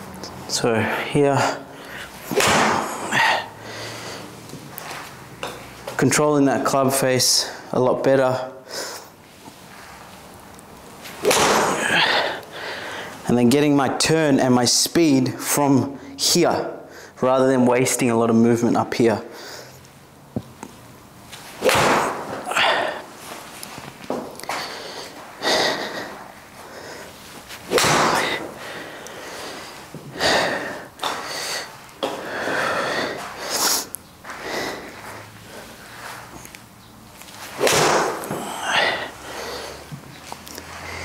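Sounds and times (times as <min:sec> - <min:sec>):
man breathing sharply and sniffing: 0:01.6 - 0:05.1, 0:11.2 - 0:13.2, 0:24.4 - 0:36.5, 0:38.1 - 0:41.0.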